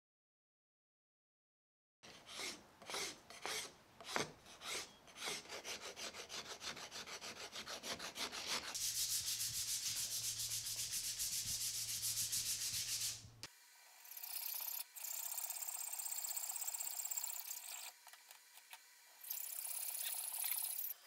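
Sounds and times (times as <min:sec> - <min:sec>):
rasp strokes on wood: 0:02.0 - 0:13.2
sandpaper rubbing on wood: 0:02.2 - 0:13.3.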